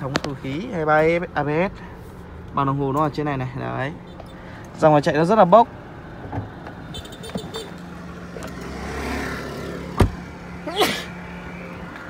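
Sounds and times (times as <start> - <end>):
car door shutting: 9.9 - 10.3.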